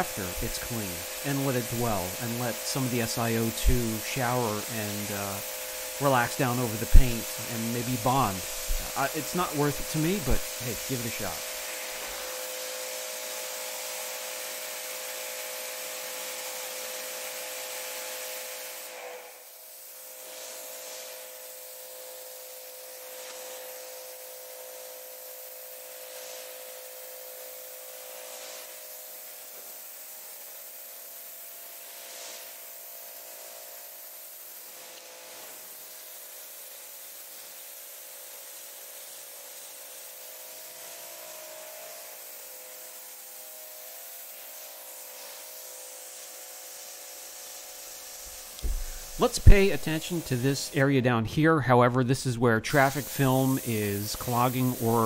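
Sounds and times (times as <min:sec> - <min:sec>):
pressure washer machine hum: 0:00.0 - 0:50.8, 0:52.6 - 0:55.0
pressure washer jet hissing: 0:00.0 - 0:50.9, 0:52.5 - 0:55.0.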